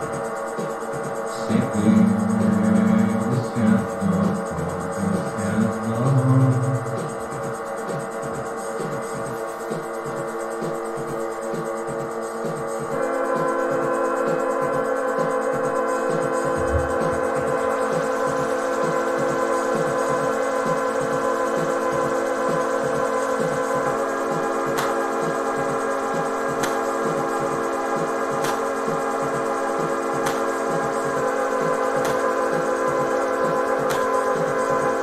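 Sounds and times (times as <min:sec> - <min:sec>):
low electronic pulse: 0:00.0 - 0:35.0
keyboard drone chords: 0:01.0 - 0:11.2, 0:11.8 - 0:35.0.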